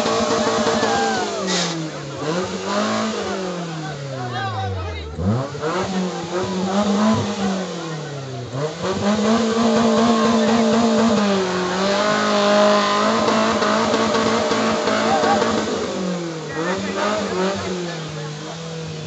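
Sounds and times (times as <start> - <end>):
crowd chatter: 0.0 - 19.0
engine revving hard: 0.0 - 19.0.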